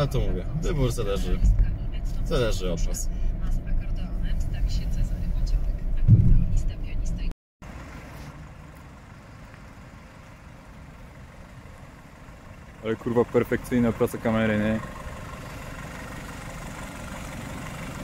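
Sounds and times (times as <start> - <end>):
car interior road and engine drone: 0.0 - 18.0.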